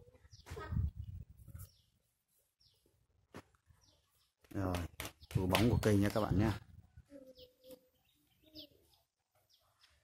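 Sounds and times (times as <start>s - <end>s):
thin high bird chirps: 7.2s - 10.0s.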